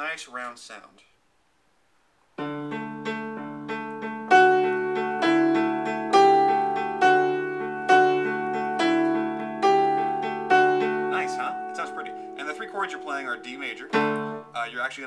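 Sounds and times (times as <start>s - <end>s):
upright piano playing: 2.4s - 14.6s.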